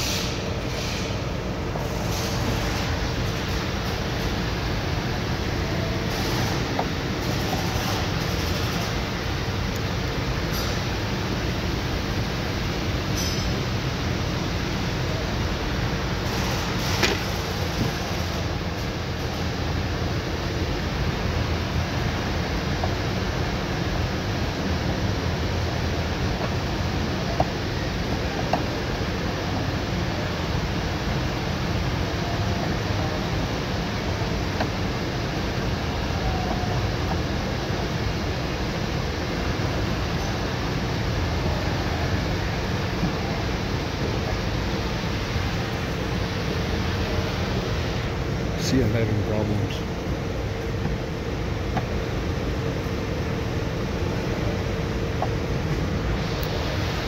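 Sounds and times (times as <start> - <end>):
fan hum and hiss: 0.0 - 57.0.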